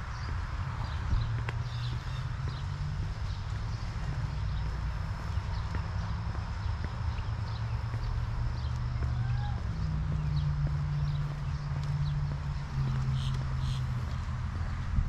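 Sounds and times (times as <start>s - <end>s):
footsteps on concrete: 0.0s - 15.0s.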